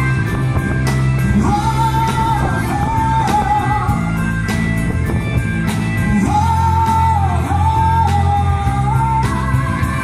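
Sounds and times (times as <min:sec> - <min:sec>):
bass guitar: 0:00.0 - 0:10.0
electric guitar: 0:00.0 - 0:10.0
steady drum beat: 0:00.0 - 0:10.0.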